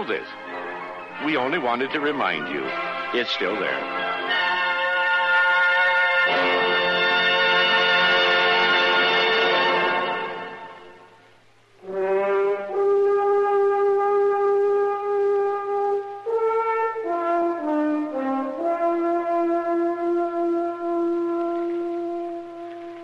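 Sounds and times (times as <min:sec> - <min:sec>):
music passage: 0:00.0 - 0:11.2, 0:11.8 - 0:23.0
solo brass melody: 0:00.0 - 0:11.2, 0:11.8 - 0:23.0.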